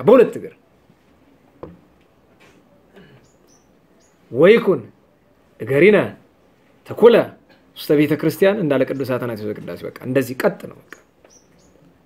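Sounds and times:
faint small noises: 0:00.0 - 0:12.0.

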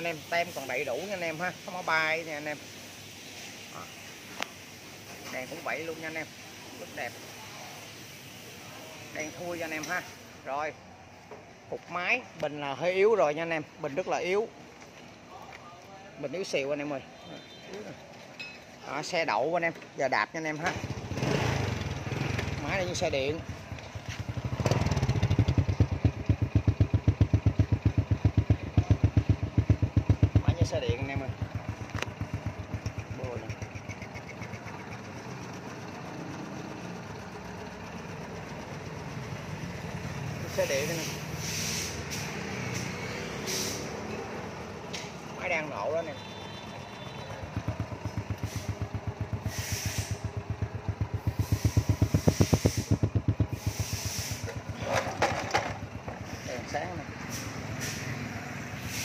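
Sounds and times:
motorbike engine idling: 0:20.5 - 0:42.0, 0:43.8 - 0:57.7.

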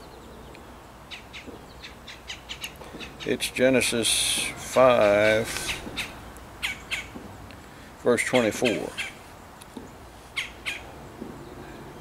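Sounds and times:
bird chirping: 0:00.0 - 0:03.5, 0:04.4 - 0:07.5, 0:08.2 - 0:09.2, 0:09.8 - 0:12.0.

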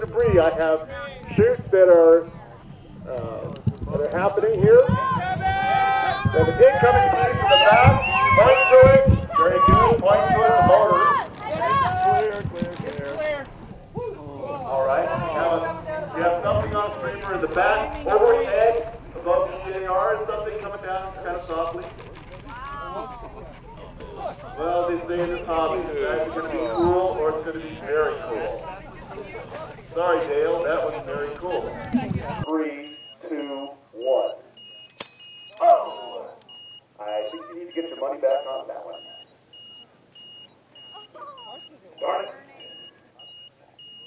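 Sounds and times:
people talking: 0:00.0 - 0:34.4, 0:35.5 - 0:36.4, 0:37.0 - 0:39.2, 0:40.8 - 0:44.0
electronic beeper beeps: 0:32.4 - 0:44.0.

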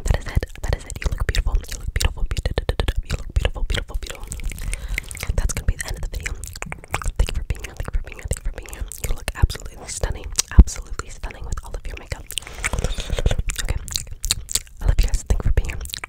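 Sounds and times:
whispering: 0:00.0 - 0:12.4, 0:13.5 - 0:14.0, 0:14.8 - 0:16.0
wet mouth sounds: 0:00.0 - 0:16.0.

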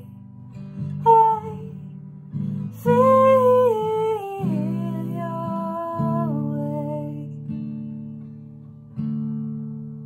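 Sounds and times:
strummed acoustic guitar: 0:00.0 - 0:10.0
woman singing a lullaby: 0:00.9 - 0:02.0, 0:02.7 - 0:07.4.

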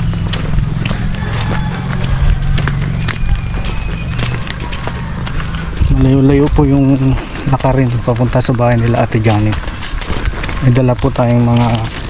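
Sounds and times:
footsteps on dirt path: 0:00.0 - 0:12.0.

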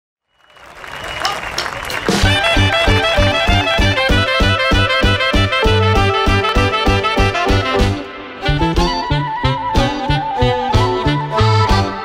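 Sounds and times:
audience applause: 0:00.4 - 0:04.0
crowd voices: 0:00.7 - 0:04.8.

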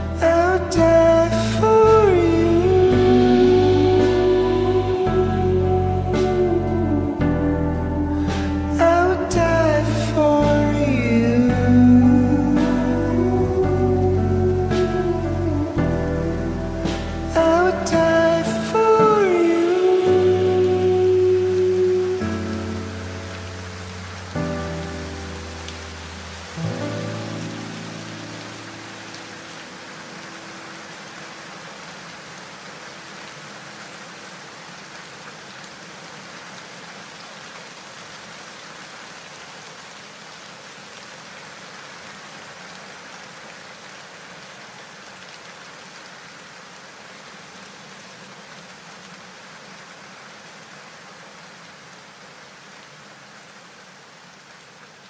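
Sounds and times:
sustained song chords: 0:00.0 - 0:29.4
steady rain: 0:00.0 - 0:55.0.

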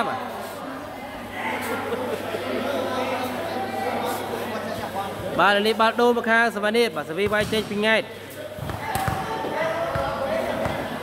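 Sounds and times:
background voices in a hall: 0:00.0 - 0:11.0
volleyball bouncing thuds: 0:07.2 - 0:07.8, 0:08.6 - 0:10.9.

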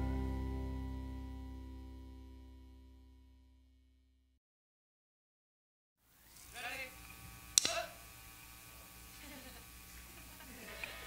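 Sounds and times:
low electrical hum: 0:06.1 - 0:11.0
sharp click: 0:07.6 - 0:07.9.

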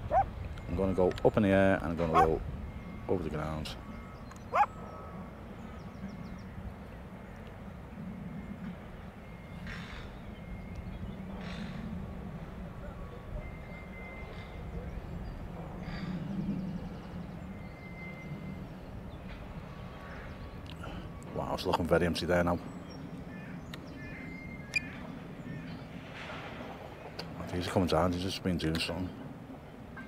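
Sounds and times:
dog yelp: 0:00.0 - 0:00.3, 0:02.1 - 0:02.4, 0:04.5 - 0:04.7.

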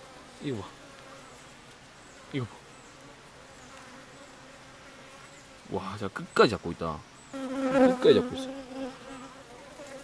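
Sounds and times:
honeybees buzzing: 0:00.0 - 0:10.0.

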